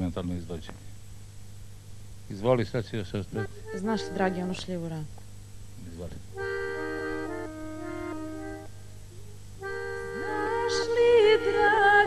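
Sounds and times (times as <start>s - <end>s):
instrumental folk chords: 3.2s - 4.9s, 6.3s - 12.0s.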